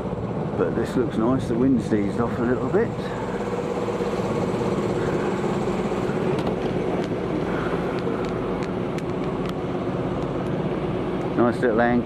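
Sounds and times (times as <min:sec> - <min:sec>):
boat engine humming: 0:00.0 - 0:12.0.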